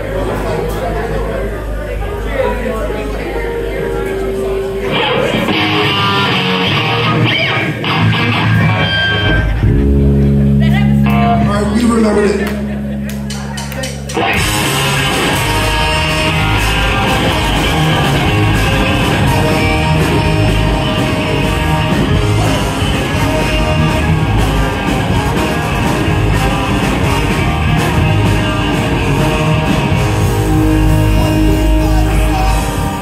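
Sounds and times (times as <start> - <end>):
ska punk band playing: 3.4 - 33.0
horn section: 14.2 - 33.0.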